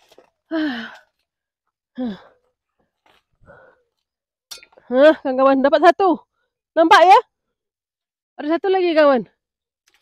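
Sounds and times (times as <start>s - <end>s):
woman speaking: 4.9s - 6.2s, 6.8s - 7.2s, 8.4s - 9.3s.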